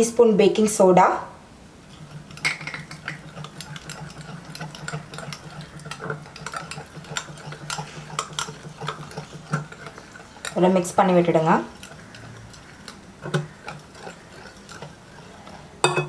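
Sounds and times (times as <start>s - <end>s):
whisk clicking against glass bowl: 2.0s - 10.9s, 11.5s - 16.0s.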